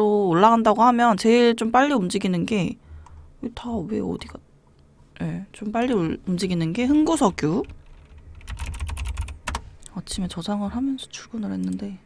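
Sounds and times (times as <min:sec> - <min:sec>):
typing on computer keyboard: 0:07.6 - 0:09.7.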